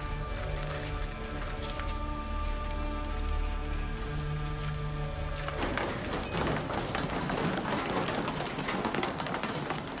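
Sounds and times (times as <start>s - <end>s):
rapid clatter of knocks: 5.3s - 10.0s.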